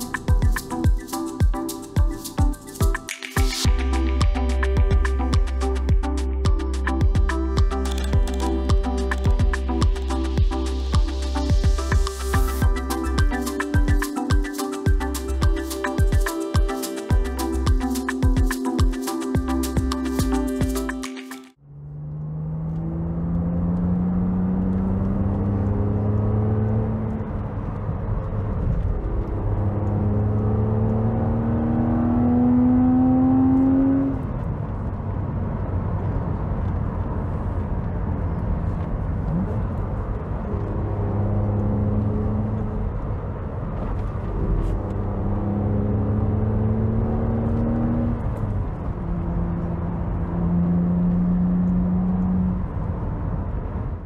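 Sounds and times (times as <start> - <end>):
background music: 0.0 - 21.6
car engine accelerating: 3.6 - 54.0
tyre and wind noise: 24.1 - 30.8, 33.8 - 54.0.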